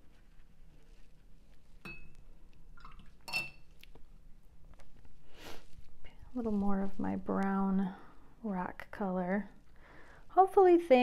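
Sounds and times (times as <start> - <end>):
paintbrush clinking against glass jar: 1.8 - 2.2, 3.2 - 3.7.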